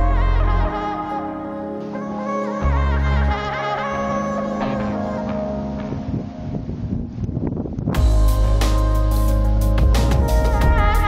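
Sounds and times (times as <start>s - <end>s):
wind gusts on microphone: 4.3s - 10.8s.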